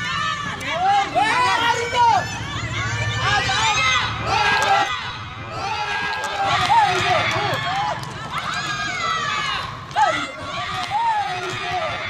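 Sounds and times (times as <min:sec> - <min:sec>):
group shouting and cheering: 0:00.0 - 0:12.0.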